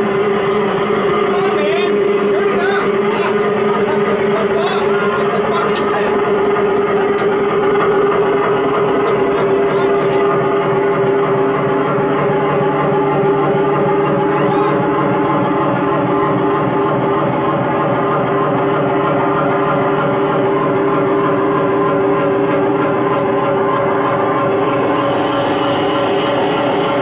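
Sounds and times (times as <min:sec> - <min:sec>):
electronic noise drone: 0:00.0 - 0:27.0.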